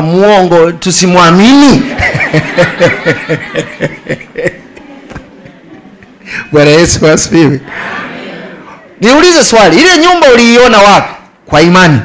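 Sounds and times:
man chuckling: 1.8 - 6.1.

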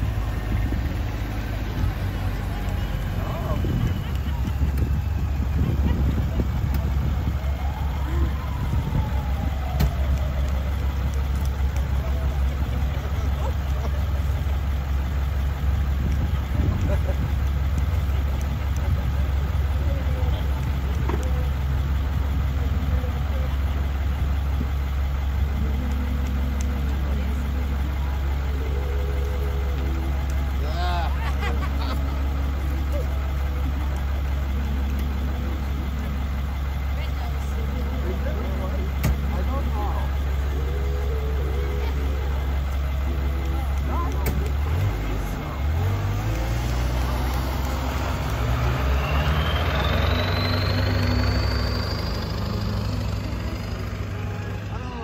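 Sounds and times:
high engine whine: 0.0 - 55.0
truck engine idling and revving: 0.0 - 55.0.

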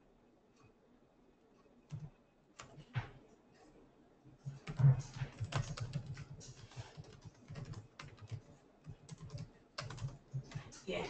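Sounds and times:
typing on computer keyboard: 1.8 - 2.9, 4.5 - 10.8.

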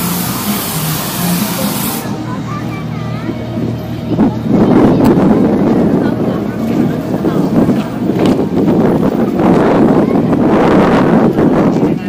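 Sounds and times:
crowd chatter: 0.0 - 12.0
wind buffeting microphone: 2.1 - 12.0.

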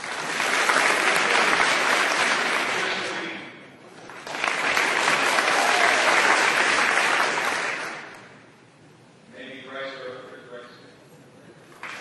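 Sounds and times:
audience applauding: 0.0 - 3.4, 4.0 - 8.4.

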